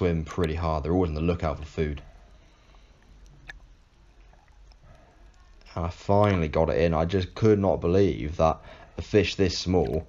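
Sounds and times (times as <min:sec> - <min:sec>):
faint underwater rumble: 0:00.0 - 0:10.0.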